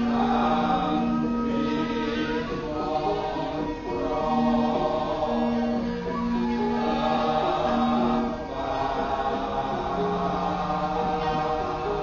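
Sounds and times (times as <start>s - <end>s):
chorus singing held notes: 0.0s - 12.0s
gamelan ensemble: 0.0s - 12.0s.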